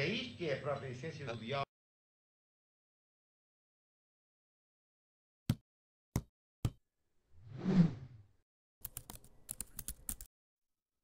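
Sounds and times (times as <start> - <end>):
whoosh: 7.4 - 8.2
keyboard typing clicks: 8.8 - 10.3.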